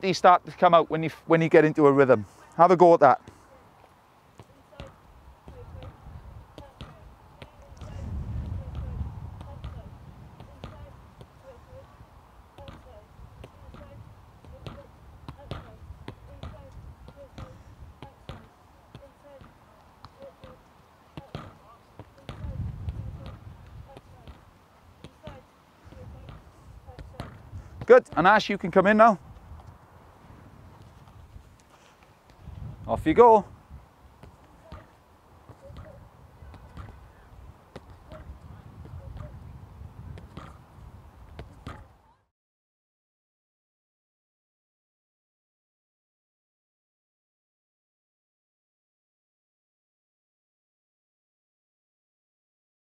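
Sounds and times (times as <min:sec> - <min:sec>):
wind rumbling on microphone: 0:05.1 - 0:18.0, 0:22.3 - 0:24.5, 0:25.2 - 0:27.9, 0:29.2 - 0:31.6, 0:32.4 - 0:34.2, 0:35.3 - 0:42.0
football knocking on rebound boards: 0:21.2 - 0:24.4, 0:40.2 - 0:40.6, 0:41.4 - 0:41.9
football knocking against boards: 0:21.2 - 0:28.3, 0:40.2 - 0:40.6.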